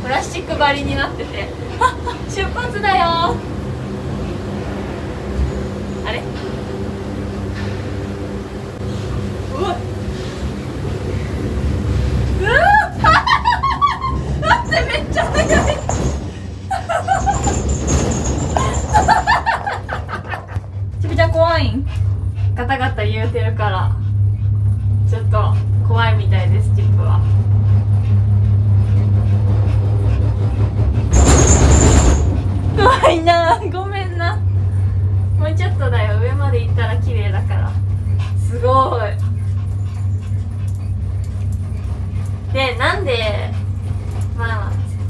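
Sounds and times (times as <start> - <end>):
low rumble of gondola cabin: 0.0 - 45.0.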